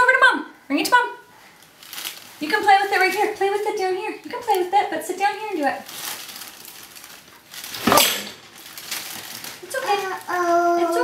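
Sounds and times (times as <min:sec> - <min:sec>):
fabric rustling: 0:01.7 - 0:03.7, 0:05.6 - 0:11.0
loud knock of dropped object: 0:07.8 - 0:08.4.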